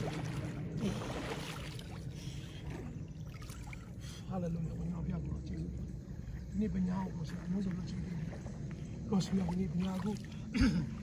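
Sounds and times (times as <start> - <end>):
water splashing and sloshing: 0.0 - 11.0.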